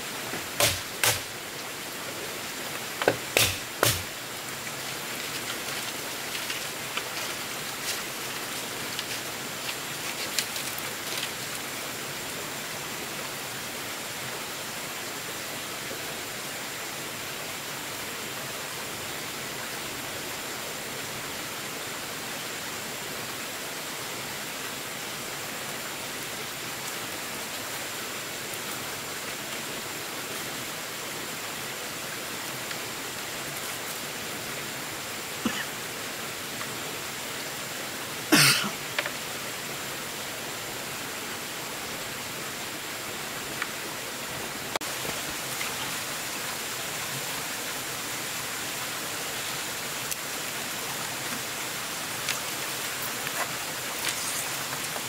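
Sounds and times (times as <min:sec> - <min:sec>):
water hissing: 0:03.0 - 0:04.2, 0:51.4 - 0:55.0.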